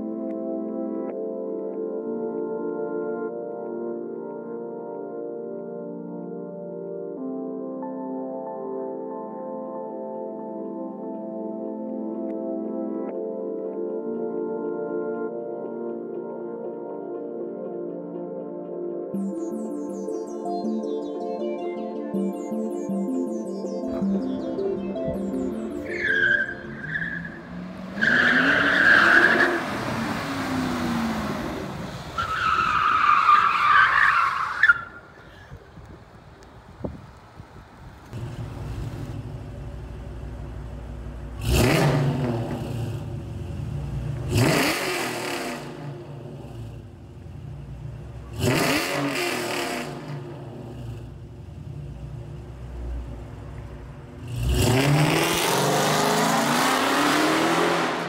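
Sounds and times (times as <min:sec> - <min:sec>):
car engine revving: 0:25.5 - 0:33.2, 0:38.0 - 0:58.0
tires squealing: 0:25.8 - 0:35.4.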